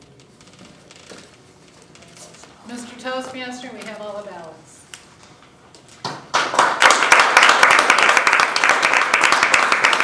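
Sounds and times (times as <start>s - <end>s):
audience applause: 6.3s - 10.0s.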